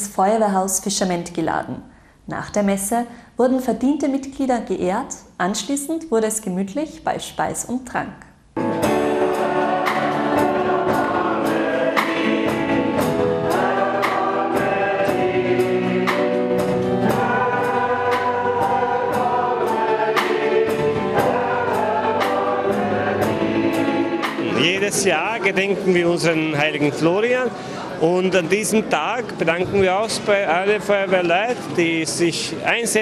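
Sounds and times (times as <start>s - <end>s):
drum kit with cymbals: 8.8s - 25.2s
mixed choir singing a hymn: 8.8s - 33.0s.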